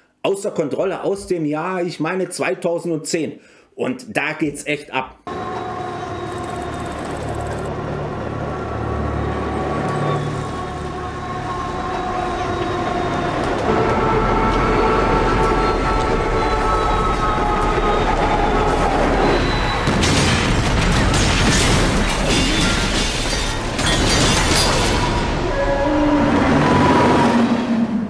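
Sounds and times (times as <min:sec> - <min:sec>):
diesel locomotive speeding: 0:05.3 - 0:20.0, 0:24.6 - 0:28.0.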